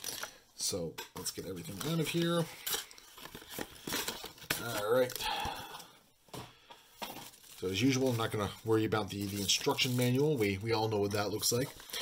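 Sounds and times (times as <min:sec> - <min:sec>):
plastic packaging crinkling: 0:00.0 - 0:00.4, 0:01.2 - 0:05.8, 0:07.0 - 0:12.0.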